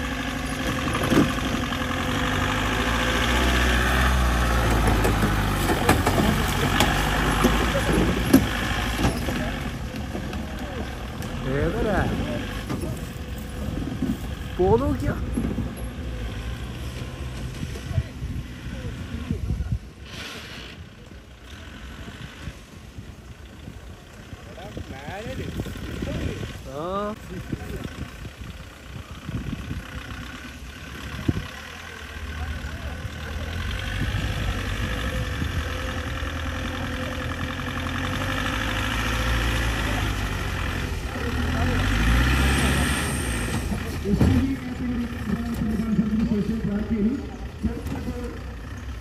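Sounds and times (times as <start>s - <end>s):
jeep engine revving under load: 0.0s - 23.2s, 27.9s - 44.3s.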